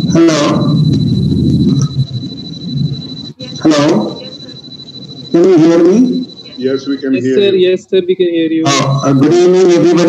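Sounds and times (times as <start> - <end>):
high-pitched electronic whine: 0.0 - 7.9, 8.6 - 10.0.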